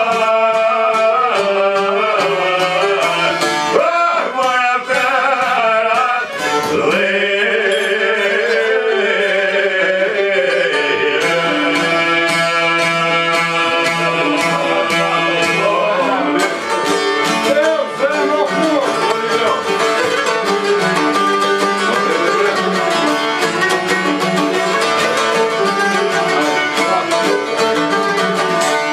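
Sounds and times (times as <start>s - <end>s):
lutes plucked rapidly: 10.4s - 28.9s.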